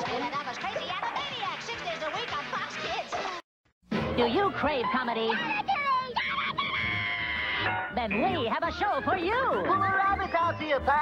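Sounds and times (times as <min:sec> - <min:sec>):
background music: 0:00.0 - 0:11.0
cartoon character screaming: 0:05.3 - 0:07.7.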